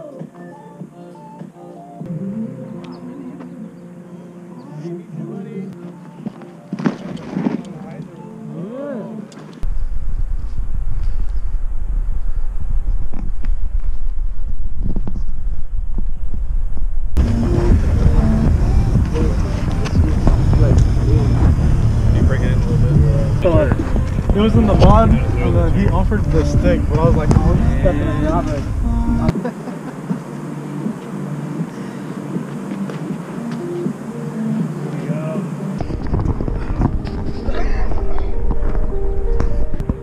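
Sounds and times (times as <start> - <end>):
music: 0.0 - 9.6, 17.2 - 40.0
outdoor noise: 0.0 - 40.0
people's voices: 2.6 - 9.6, 17.2 - 39.7
loud low rumble: 9.6 - 29.3.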